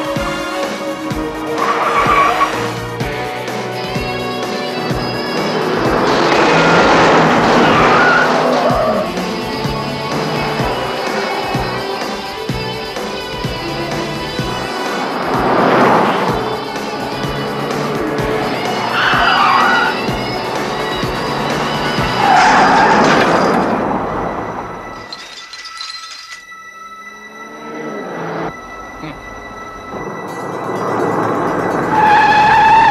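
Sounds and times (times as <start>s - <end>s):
car tyres squealing: 1.4s - 2.9s, 4.9s - 32.9s.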